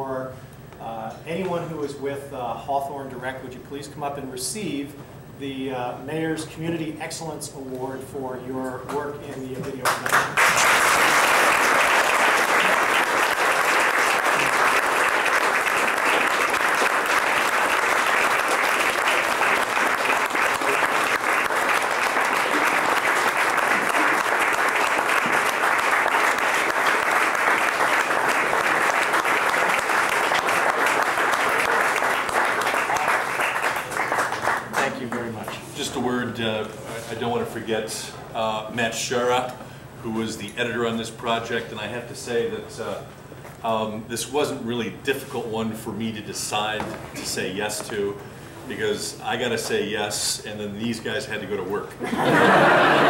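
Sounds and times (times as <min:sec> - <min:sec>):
audience applauding: 0:09.8 - 0:35.6, 0:52.2 - 0:53.0.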